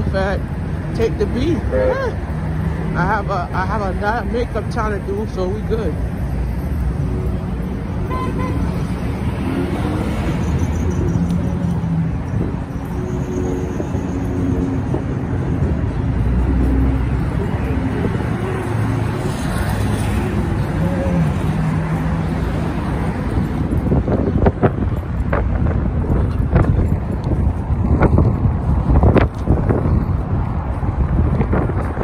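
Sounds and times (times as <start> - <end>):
passing cars rumbling: 0.0 - 32.0.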